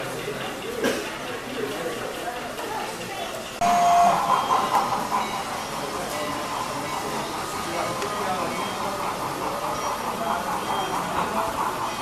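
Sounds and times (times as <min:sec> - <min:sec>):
model steam locomotive chuffing: 0:00.0 - 0:12.0.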